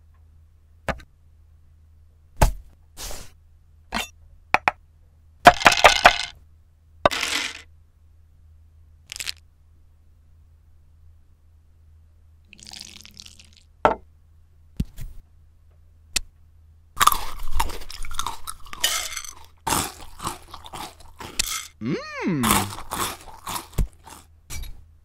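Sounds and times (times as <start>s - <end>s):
dice clattering in ceramic dish: 5.5s - 6.3s, 7.1s - 7.6s, 18.2s - 19.5s, 20.7s - 21.8s.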